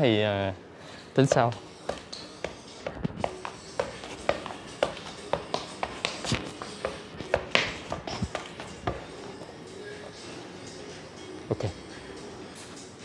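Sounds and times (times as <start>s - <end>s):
faint background music: 0.0s - 13.0s
football taps on feet: 1.9s - 9.1s.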